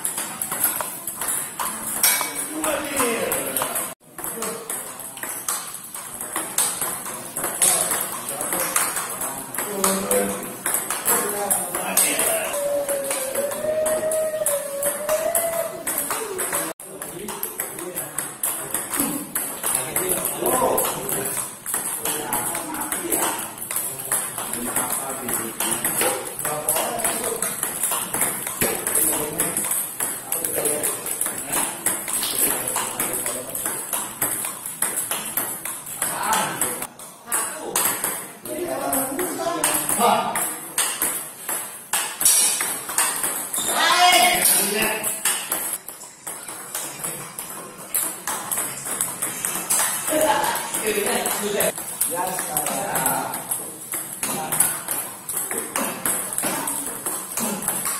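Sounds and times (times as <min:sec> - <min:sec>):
table tennis balls clicking: 0:00.0 - 0:57.9.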